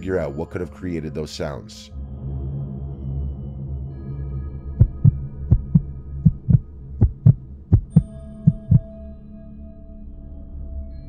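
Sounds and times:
heartbeat thumps: 0:04.8 - 0:08.9
low steady hum: 0:04.8 - 0:08.9.

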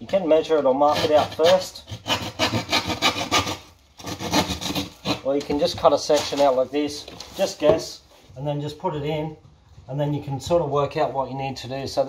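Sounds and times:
hand saw rasping through plasterboard: 0:00.8 - 0:06.4.

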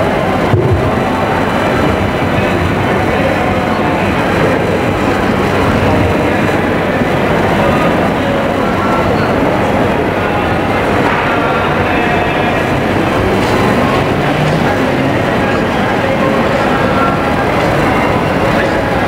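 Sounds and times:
murmur of voices: 0:00.0 - 0:19.0
rumbling background noise: 0:00.0 - 0:19.0.

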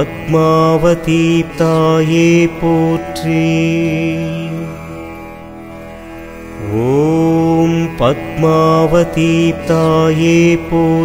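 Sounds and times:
man chanting: 0:00.0 - 0:05.0, 0:06.6 - 0:11.0
steady drone: 0:00.0 - 0:11.0.

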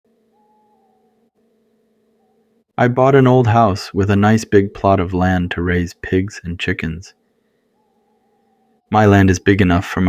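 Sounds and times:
faint steady droning tone: 0:00.1 - 0:10.0.

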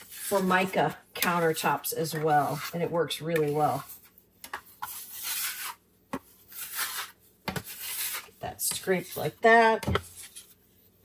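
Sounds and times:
metal scraper on granite countertop: 0:00.0 - 0:03.9, 0:04.8 - 0:05.8, 0:06.5 - 0:10.5.

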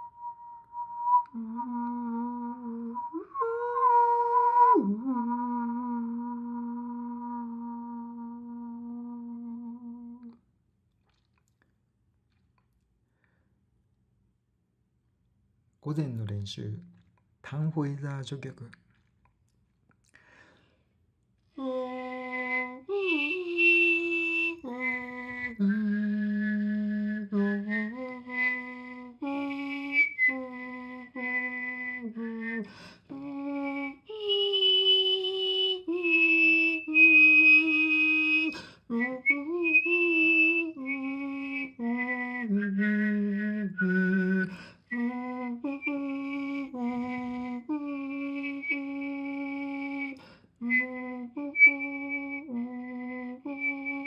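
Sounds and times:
high whistled tone: 0:00.0 - 0:08.2, 0:21.6 - 0:54.0.

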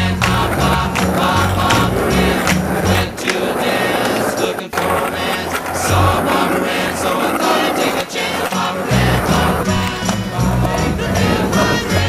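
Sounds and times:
background music: 0:00.0 - 0:03.9, 0:04.9 - 0:12.0
skateboard wheels rolling on concrete: 0:00.0 - 0:12.0.

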